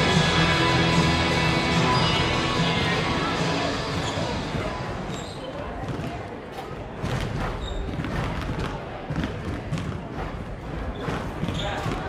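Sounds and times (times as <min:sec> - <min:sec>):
crowd chatter: 0:00.0 - 0:12.0
basketballs bouncing on wooden floor: 0:05.6 - 0:12.0.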